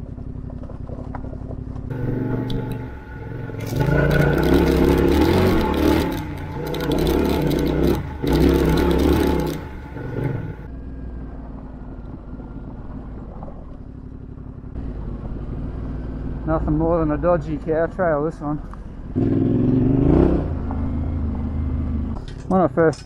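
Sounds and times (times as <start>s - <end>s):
motorcycle engine revving: 0.0s - 17.4s, 18.9s - 22.2s.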